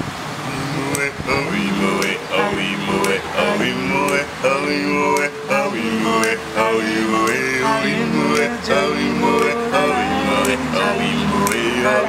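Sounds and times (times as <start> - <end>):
men singing in harmony: 0.4 - 12.0.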